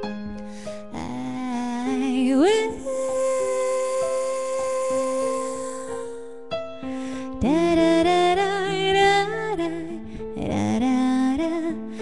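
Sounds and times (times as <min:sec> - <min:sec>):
woman singing: 0:00.8 - 0:06.4, 0:07.3 - 0:12.0.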